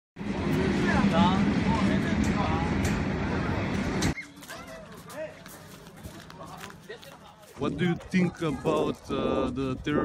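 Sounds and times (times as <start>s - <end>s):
train coaches rumbling past: 0.2s - 6.4s
voices: 0.2s - 10.0s.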